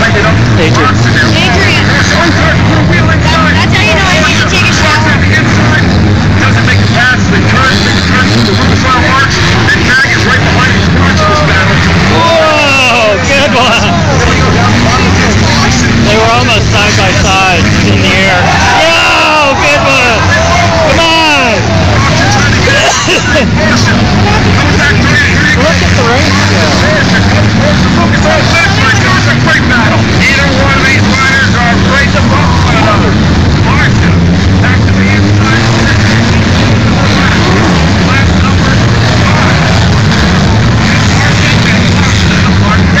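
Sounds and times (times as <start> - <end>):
crowd voices: 0.0 - 43.0
low engine drone: 0.0 - 43.0
motocross engines revving: 0.0 - 43.0.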